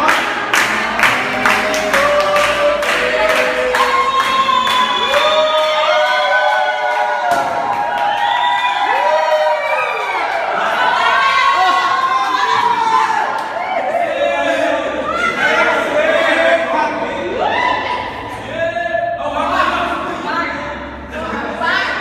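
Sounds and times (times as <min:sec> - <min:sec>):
hand-clapping: 0:00.0 - 0:05.8
group singing birthday song: 0:00.0 - 0:07.5, 0:13.9 - 0:22.0
cheering shouts: 0:01.5 - 0:16.3.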